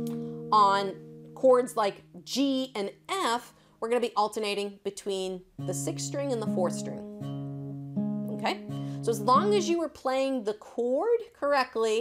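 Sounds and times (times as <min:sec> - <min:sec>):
acoustic guitar bass notes plucked: 0:00.0 - 0:03.3, 0:05.6 - 0:09.9.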